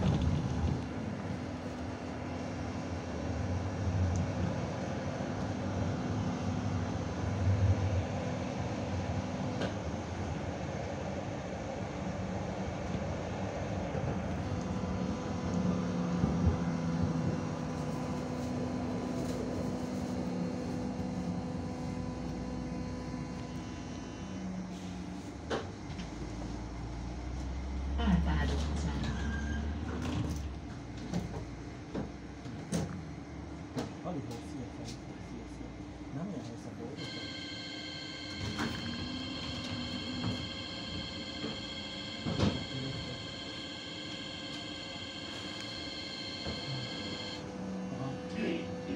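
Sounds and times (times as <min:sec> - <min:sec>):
tram wheels rumbling on rail: 0:00.0 - 0:22.7, 0:37.0 - 0:47.4
passengers' voices: 0:28.0 - 0:30.4, 0:33.9 - 0:48.9
high-pitched whine: 0:37.0 - 0:47.4
motor hum: 0:37.0 - 0:47.8.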